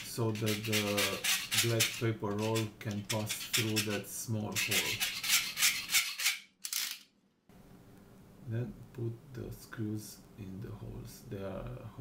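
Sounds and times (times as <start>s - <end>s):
blade scraping plastic: 0.0s - 6.4s.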